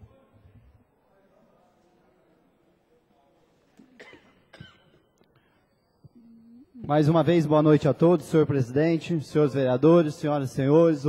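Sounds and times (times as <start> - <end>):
person clearing throat: 3.8 - 5.1.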